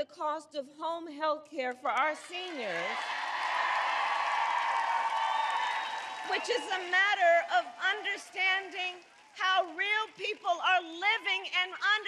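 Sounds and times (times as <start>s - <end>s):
crowd cheering: 2.2s - 10.6s
crowd applauding: 2.2s - 10.7s.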